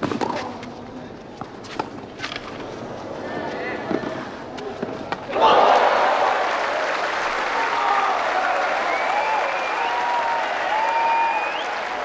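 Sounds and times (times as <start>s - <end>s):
low crowd murmur: 0.0s - 6.3s.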